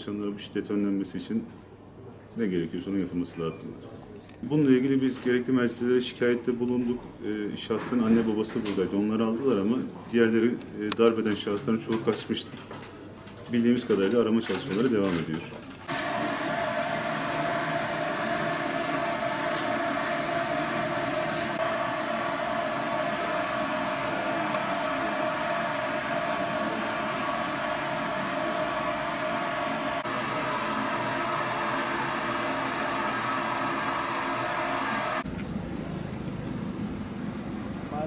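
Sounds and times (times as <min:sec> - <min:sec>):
steady equipment hum: 0:00.0 - 0:38.0
high steady tone: 0:15.9 - 0:35.2.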